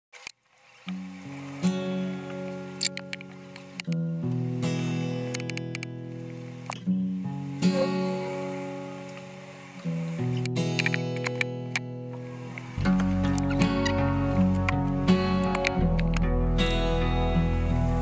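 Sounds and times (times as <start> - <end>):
music with sustained chords: 0.8 - 18.0
short clicks: 2.8 - 4.0, 5.3 - 5.9, 12.6 - 16.8.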